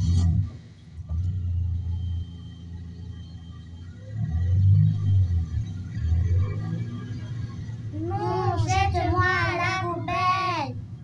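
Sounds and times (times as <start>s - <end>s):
low car engine rumble: 0.0s - 11.0s.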